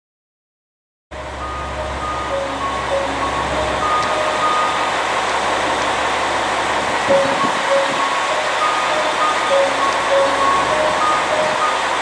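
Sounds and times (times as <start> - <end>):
outdoor low rumble: 1.1 - 12.0
slow melody of clear tones: 1.2 - 12.0.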